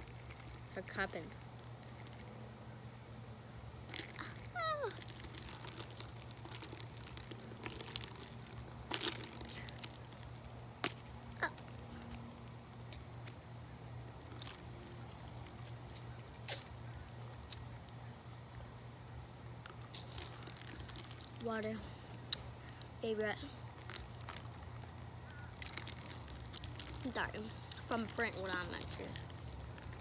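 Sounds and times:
small clicks and sips: 0.0s - 2.4s, 3.9s - 13.4s, 14.2s - 18.0s, 19.6s - 30.0s
steady low hum: 0.0s - 30.0s.

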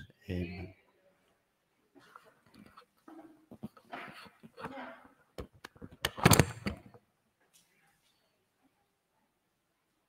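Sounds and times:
microphone handling knocks and clicks: 5.4s - 7.0s.

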